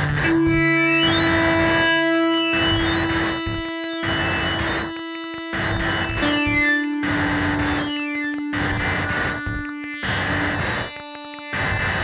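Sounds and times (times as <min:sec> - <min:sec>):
synthesizer drone note: 0:00.0 - 0:12.0
harsh distorted noise bursts: 0:02.5 - 0:04.9, 0:05.5 - 0:12.0.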